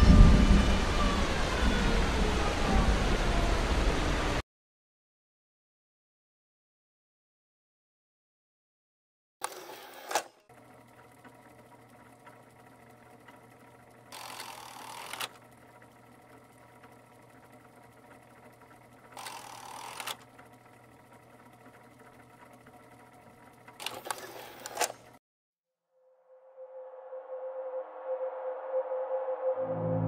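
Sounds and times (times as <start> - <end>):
machine whirring and hum: 0.0 - 4.4, 9.4 - 25.2.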